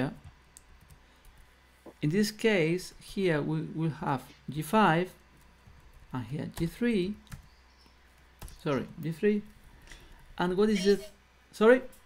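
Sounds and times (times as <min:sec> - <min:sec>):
person speaking: 0:08.5 - 0:09.6, 0:10.4 - 0:11.9.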